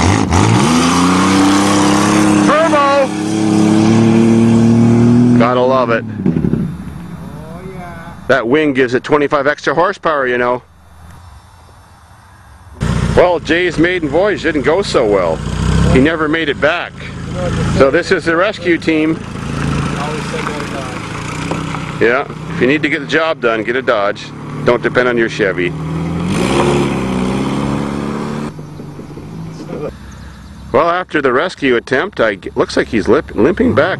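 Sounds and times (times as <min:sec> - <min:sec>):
car engine driving away: 0:00.0 - 0:08.4, 0:10.3 - 0:33.9
tyres on gravel: 0:12.8 - 0:33.9.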